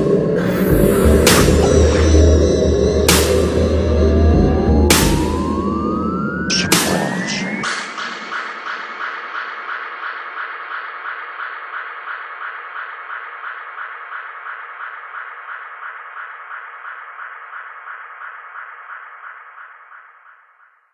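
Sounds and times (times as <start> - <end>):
repeating electronic synth pulse: 0.0 - 16.6.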